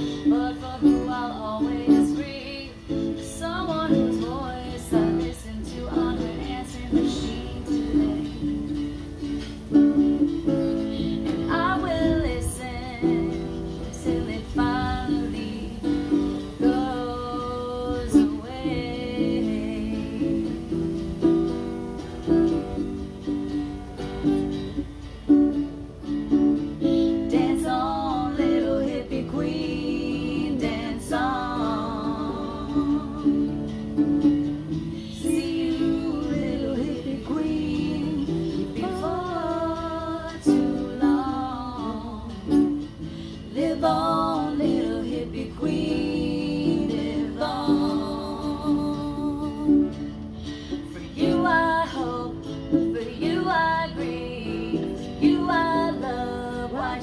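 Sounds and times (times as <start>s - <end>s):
acoustic guitar strumming: 0.0s - 57.0s
woman singing: 0.0s - 57.0s.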